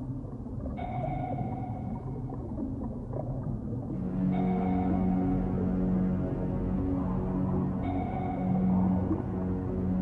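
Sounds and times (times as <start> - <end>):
low rumbling drone: 3.9 - 10.0
low synth tone: 3.9 - 10.0.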